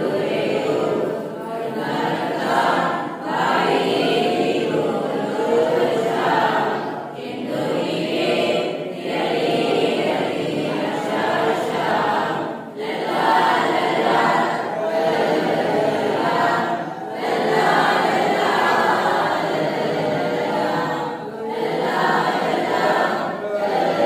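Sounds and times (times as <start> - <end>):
group singing in unison: 0.0 - 24.0.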